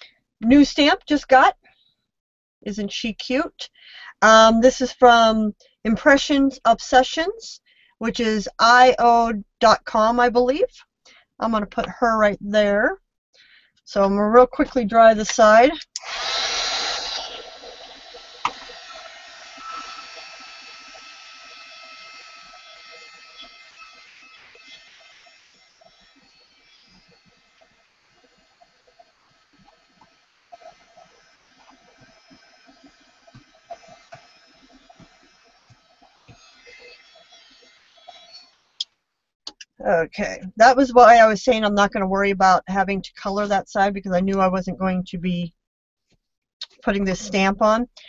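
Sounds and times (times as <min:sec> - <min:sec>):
heat tool blowing hot air: 0:16.0 - 0:27.4.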